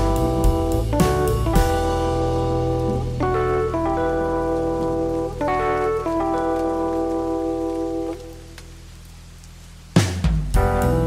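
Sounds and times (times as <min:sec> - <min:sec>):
electric piano chords: 0:00.0 - 0:08.6, 0:10.6 - 0:11.0
rain: 0:00.0 - 0:11.0.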